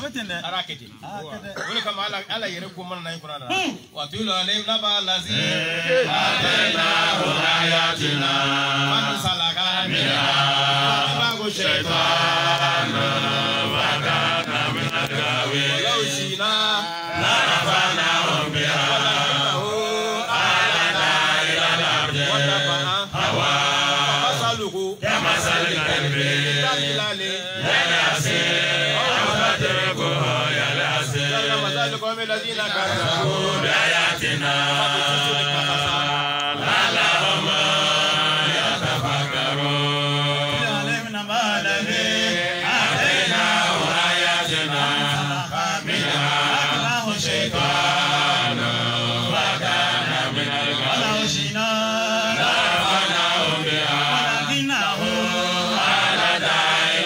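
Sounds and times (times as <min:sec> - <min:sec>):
men chanting over loudspeakers: 0:05.0 - 0:57.0.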